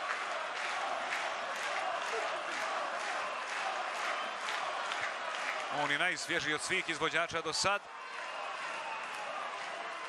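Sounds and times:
faint crowd chanting: 0.0 - 5.5.

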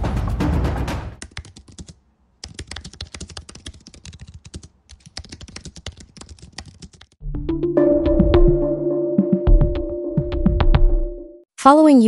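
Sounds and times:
fast typing on keyboard: 1.2 - 7.2.

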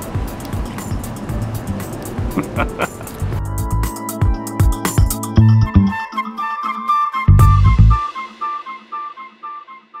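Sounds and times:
background music with short pitched notes: 3.4 - 10.0.

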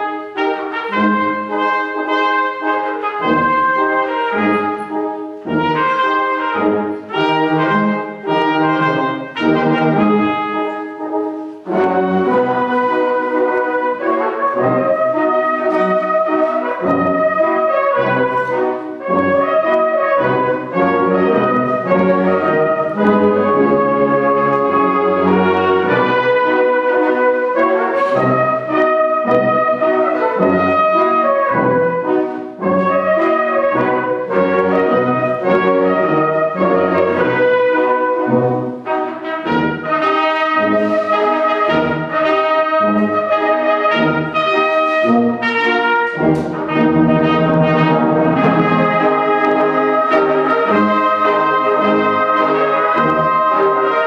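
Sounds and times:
concert wind band playing: 0.0 - 54.0
solo trumpet melody: 0.0 - 54.0.

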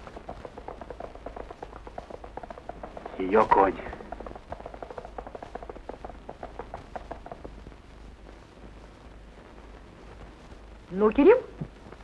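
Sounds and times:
film soundtrack crackle: 0.0 - 12.0
low steady hum: 0.0 - 12.0.

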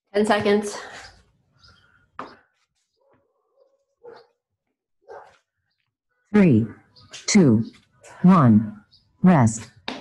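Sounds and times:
faint dog barking: 3.0 - 4.4, 5.0 - 5.4.

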